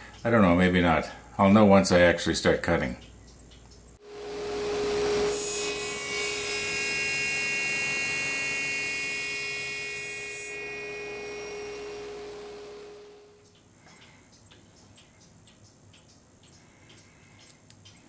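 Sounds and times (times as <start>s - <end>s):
saw blade cutting wood whine: 4.0s - 13.4s
table saw motor humming: 4.0s - 13.4s.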